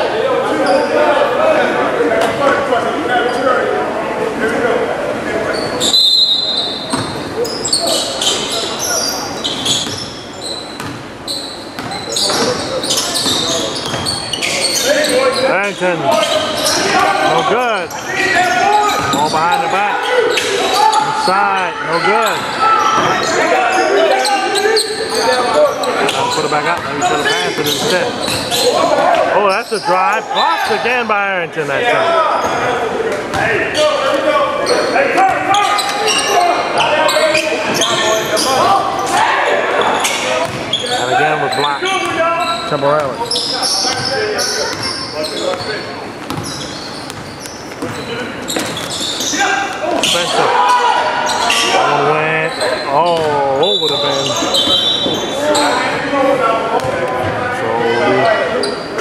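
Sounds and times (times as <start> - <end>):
players shouting: 12.0 - 46.6, 47.8 - 59.0
basketball bouncing on hardwood: 46.2 - 46.5.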